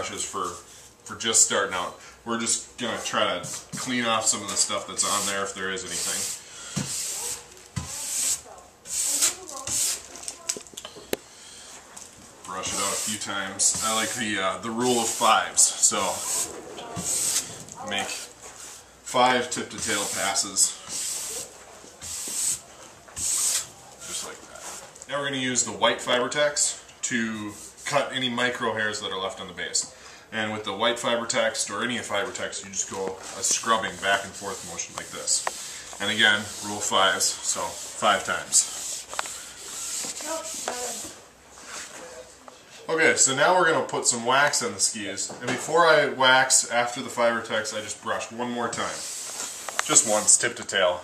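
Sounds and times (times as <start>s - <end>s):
steel brush scratching ski base: 2.9s - 10.3s, 12.6s - 24.9s, 32.8s - 41.1s, 48.8s - 50.5s.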